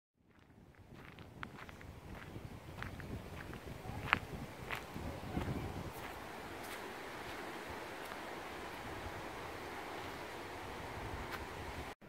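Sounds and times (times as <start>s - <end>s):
wind and rustling leaves: 0.2s - 12.0s.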